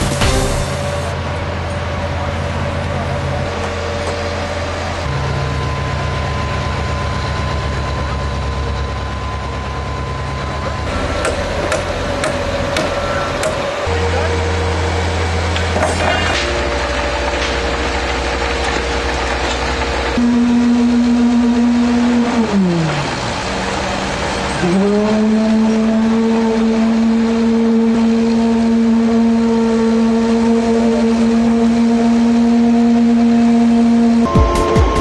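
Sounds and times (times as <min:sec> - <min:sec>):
hammer striking wooden board: 0:11.2 - 0:13.6.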